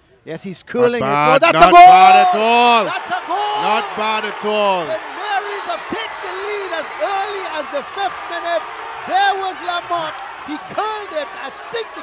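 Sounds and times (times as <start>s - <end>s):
excited voices shouting: 1.0s - 12.0s.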